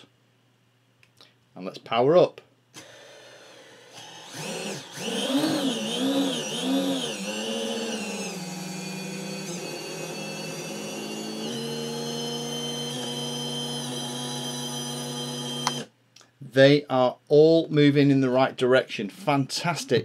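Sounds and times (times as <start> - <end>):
quadcopter motors whining: 2.8 - 15.9.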